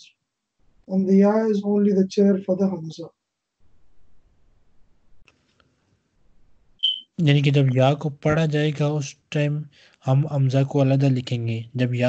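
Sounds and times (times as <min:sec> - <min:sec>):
short electronic beep: 0:06.8 - 0:07.2.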